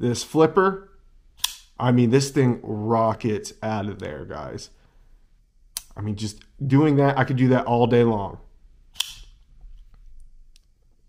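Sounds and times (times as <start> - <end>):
folding knife snapping open: 9.0 - 9.3.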